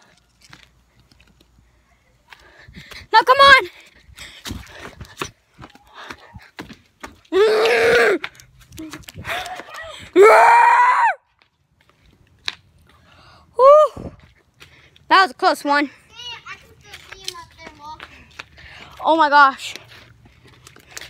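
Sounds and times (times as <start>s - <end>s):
children screaming and yelling: 9.5s - 11.2s.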